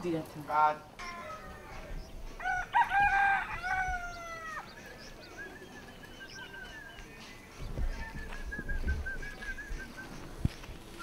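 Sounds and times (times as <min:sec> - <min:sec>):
rooster crowing: 0:02.4 - 0:04.7.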